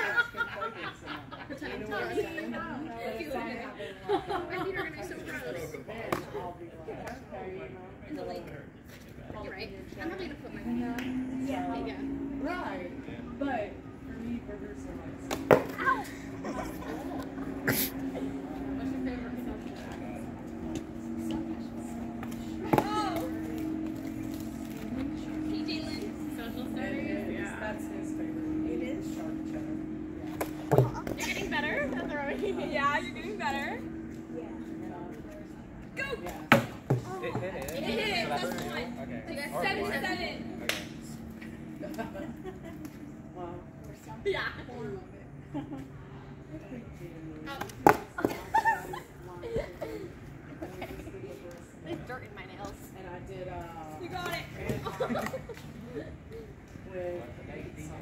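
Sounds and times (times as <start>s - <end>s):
low voices: 0.0s - 58.0s
steady low hum: 0.0s - 58.0s.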